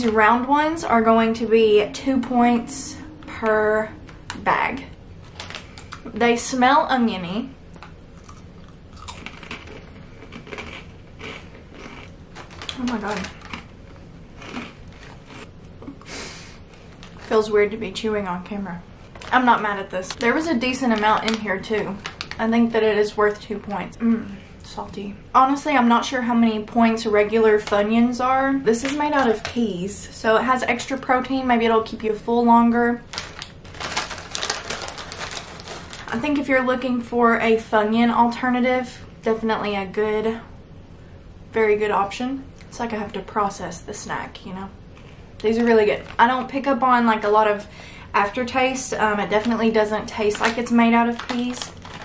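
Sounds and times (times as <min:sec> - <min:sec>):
plastic snack bag crinkling: 0:05.2 - 0:06.6, 0:07.8 - 0:15.5, 0:16.7 - 0:18.0, 0:19.0 - 0:23.5, 0:33.0 - 0:36.8, 0:45.0 - 0:46.6, 0:48.9 - 0:52.0
chips crunching while chewed: 0:07.8 - 0:16.0, 0:33.1 - 0:36.2, 0:50.4 - 0:52.0.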